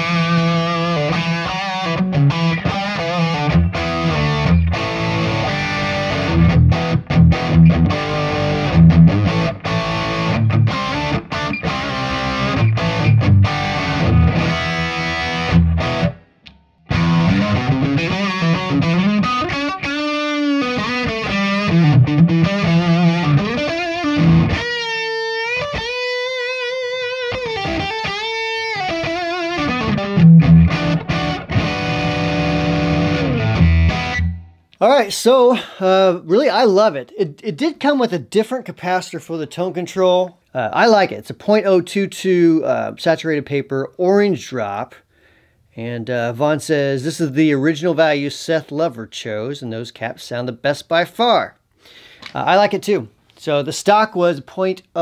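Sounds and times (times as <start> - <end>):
overdriven electric guitar riffs: 0.0 - 34.9.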